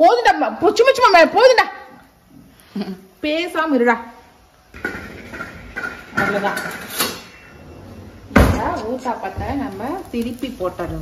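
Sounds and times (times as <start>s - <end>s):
batter sizzling on a hot griddle: 8.7s - 11.0s.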